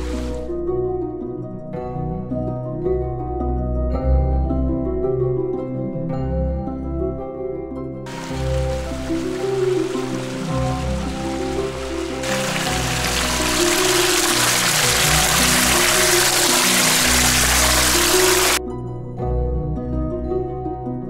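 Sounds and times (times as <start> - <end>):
stream splashing over rocks: 0.0 - 0.4, 8.1 - 18.6
soft background music: 0.0 - 21.0.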